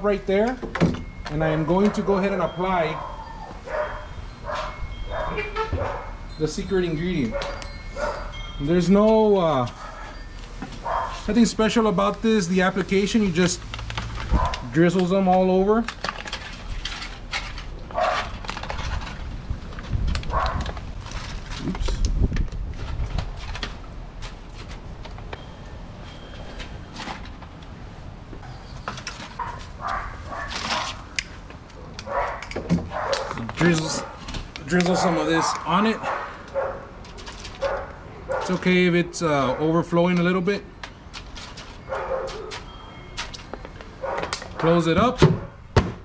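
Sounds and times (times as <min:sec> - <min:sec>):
aluminum foil rustling: 0:07.4 - 0:27.6, 0:28.6 - 0:38.9, 0:40.0 - 0:44.8.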